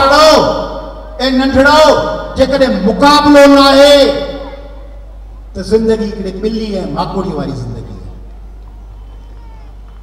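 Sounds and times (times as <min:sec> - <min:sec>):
low electrical hum: 0:00.0 - 0:10.0
faint crowd murmur: 0:03.9 - 0:06.4, 0:07.2 - 0:10.0.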